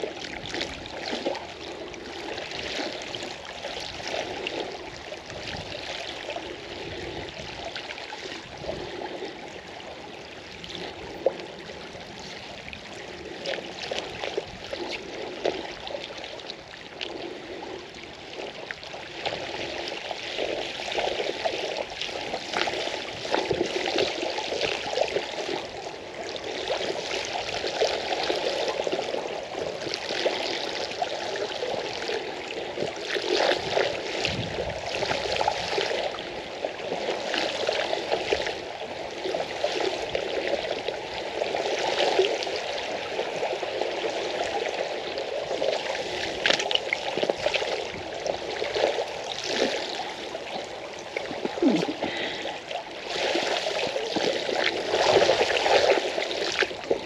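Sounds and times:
creek water rushing and splashing: 0.0 - 57.0.

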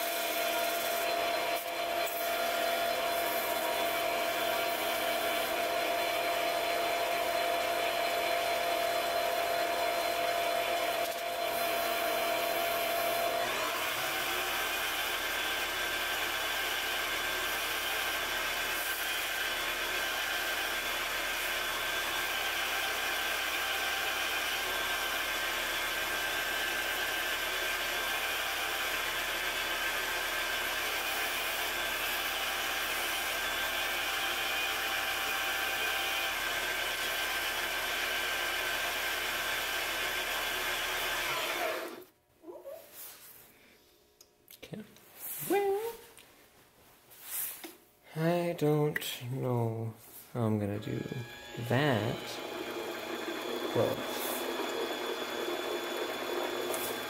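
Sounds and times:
lathe motor whine: 0.0 - 42.0, 50.8 - 57.0.

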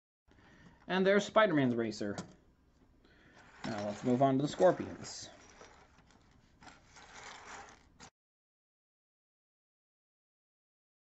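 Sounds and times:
plastic toy bricks rubbing and clicking: 3.3 - 8.1.

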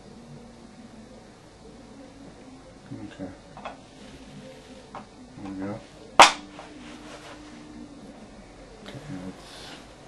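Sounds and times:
faint steady hum: 0.0 - 10.0
sharp loud knock: 6.2 - 6.5.

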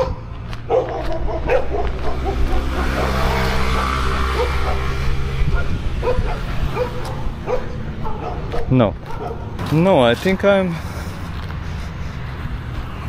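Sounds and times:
dogs barking: 0.0 - 9.6.

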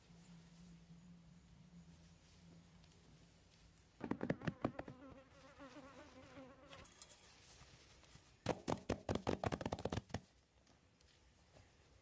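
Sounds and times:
insect buzzing: 4.3 - 6.9
fast sharp clicks: 8.5 - 10.3.

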